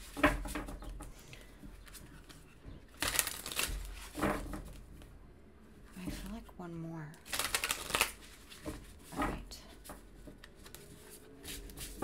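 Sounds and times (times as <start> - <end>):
cards shuffled by hand: 1.8 - 4.8, 7.2 - 9.2, 9.8 - 12.0.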